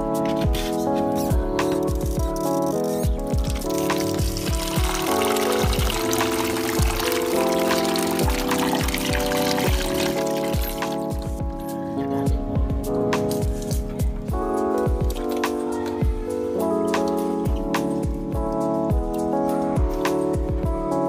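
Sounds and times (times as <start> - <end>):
background music with steady beat: 0.0 - 21.0
water splashing into plastic basin: 3.4 - 11.4.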